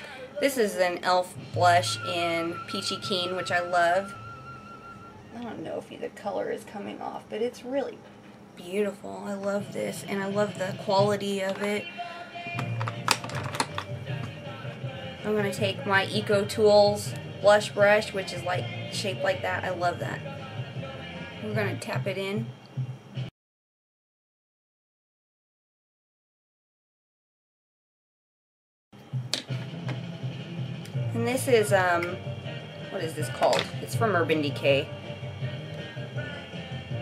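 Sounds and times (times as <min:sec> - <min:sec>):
low room hum: 0:00.0 - 0:23.3
quiet background music: 0:00.0 - 0:23.3, 0:29.0 - 0:37.0.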